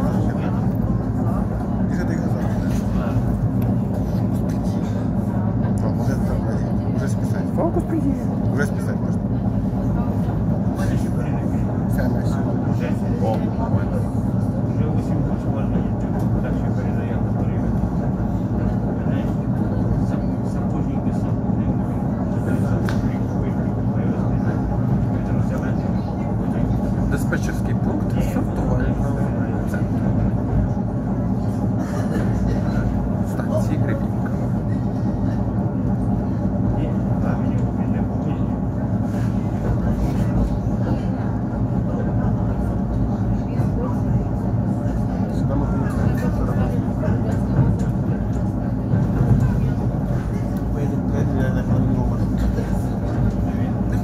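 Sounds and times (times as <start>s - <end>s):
train wheels and motor rumble: 0.0s - 54.0s.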